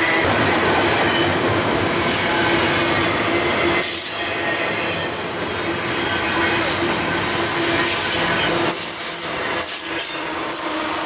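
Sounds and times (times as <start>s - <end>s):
train wheels on rails: 0.0s - 11.0s.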